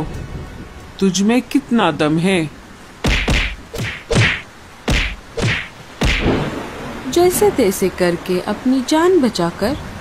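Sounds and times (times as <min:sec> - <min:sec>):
cartoon whacks and thuds: 0:03.0 - 0:06.5.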